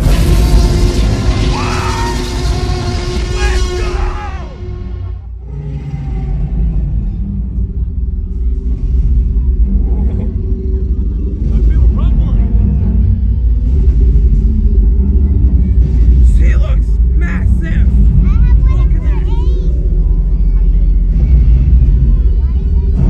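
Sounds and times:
music and sound effects rumbling: 0.0 - 23.0.

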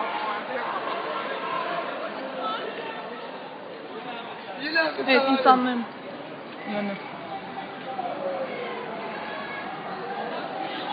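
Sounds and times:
crowd chatter: 0.0 - 10.9.

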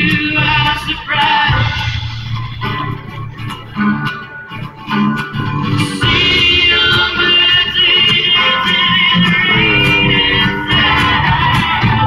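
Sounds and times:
person singing: 0.0 - 3.0, 5.5 - 12.0
live bluegrass band playing: 0.0 - 12.0
steady bass line: 0.0 - 12.0.

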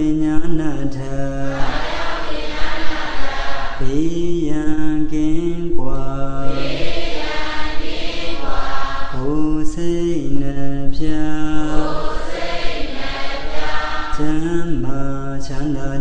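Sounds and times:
man chanting into a microphone: 0.0 - 1.7, 3.8 - 6.6, 9.1 - 11.9, 14.1 - 16.0.

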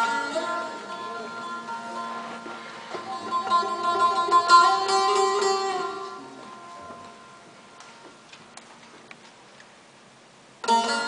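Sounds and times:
plucked lute notes ringing: 0.0 - 7.8, 10.6 - 11.0.

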